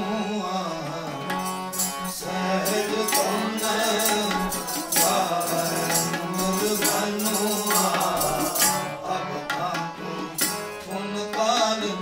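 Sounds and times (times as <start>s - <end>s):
harmonium drone: 0.0s - 12.0s.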